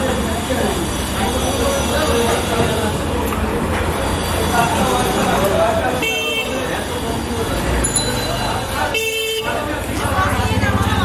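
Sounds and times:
low traffic rumble: 0.0s - 11.0s
people talking: 0.0s - 11.0s
vehicle horn toot: 5.9s - 6.8s, 8.8s - 9.7s.

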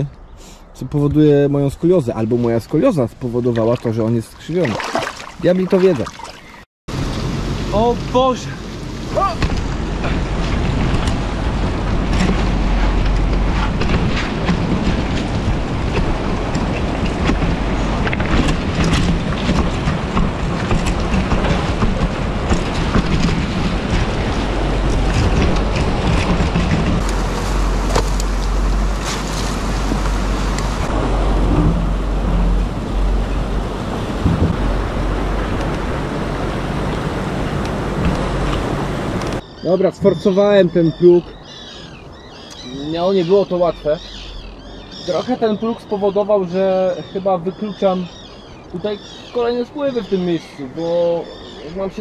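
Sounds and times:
river water rushing: 4.6s - 39.4s
wind rumbling on microphone: 6.4s - 47.0s
boat dragged over gravel: 6.9s - 39.2s.

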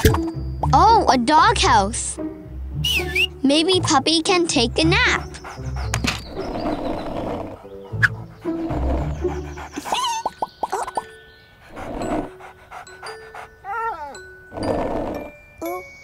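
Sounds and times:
light background music: 0.0s - 16.0s
cartoon puppy panting and barking: 3.7s - 6.4s, 7.5s - 14.3s.

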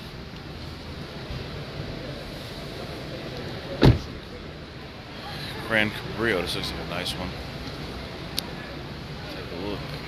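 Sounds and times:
crowd hubbub in a hall: 0.0s - 10.0s
loud short thump: 3.8s - 4.2s.

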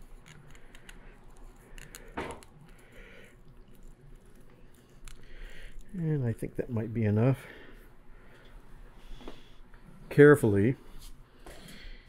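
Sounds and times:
thread winding clicks and rustles: 0.0s - 2.9s.

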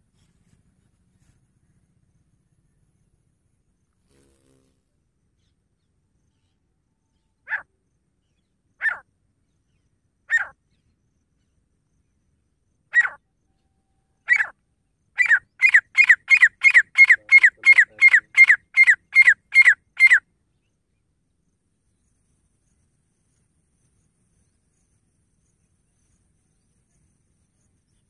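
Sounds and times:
francolin calling harsh notes: 15.6s - 20.2s.

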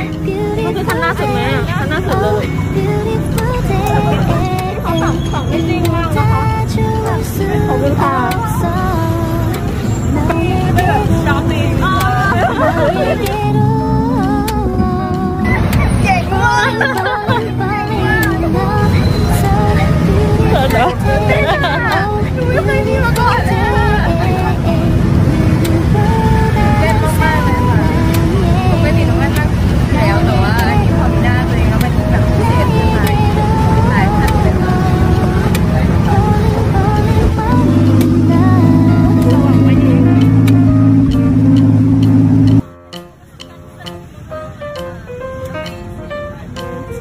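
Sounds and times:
woman talking: 0.0s - 9.1s, 10.2s - 13.5s, 19.5s - 24.9s, 26.5s - 36.4s
engine droning: 0.0s - 42.9s.

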